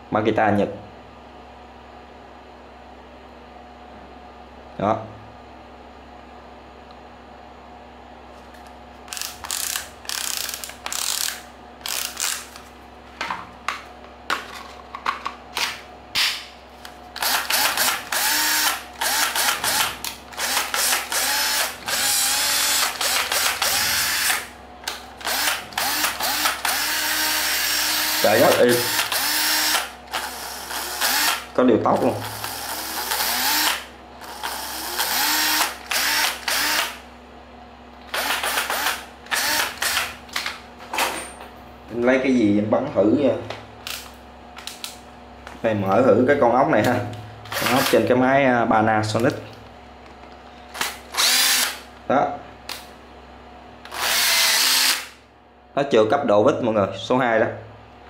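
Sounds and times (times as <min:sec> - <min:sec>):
cordless drill whining: 0:17.2 - 0:24.4, 0:25.2 - 0:31.5, 0:32.3 - 0:37.0, 0:38.1 - 0:40.1, 0:50.8 - 0:51.8, 0:53.9 - 0:55.2.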